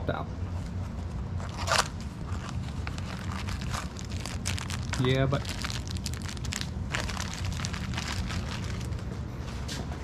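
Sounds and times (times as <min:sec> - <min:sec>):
low hum: 0:00.0 - 0:10.0
plastic bag crinkling: 0:01.4 - 0:09.1.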